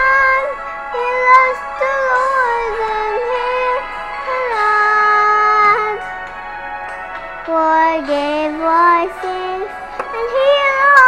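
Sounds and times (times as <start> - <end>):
child singing: 0.0 - 6.0, 7.4 - 11.0.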